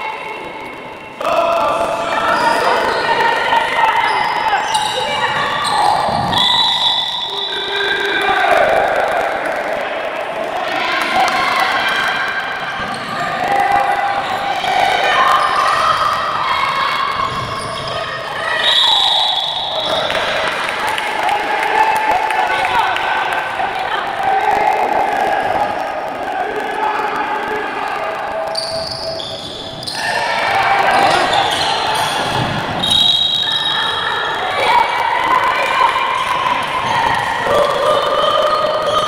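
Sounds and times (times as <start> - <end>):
voices echoing in a hall: 0.0 - 39.0.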